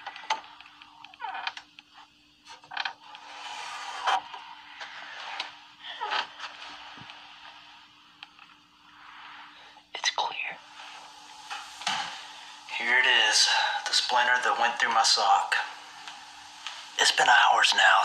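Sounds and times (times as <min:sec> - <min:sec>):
door creaking open: 0:00.0 - 0:01.8
faint steady hum: 0:00.0 - 0:18.0.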